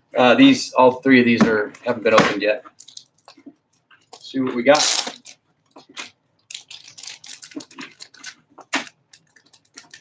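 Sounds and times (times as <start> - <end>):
plastic bags crinkling: 2.8 - 3.5, 4.2 - 10.0.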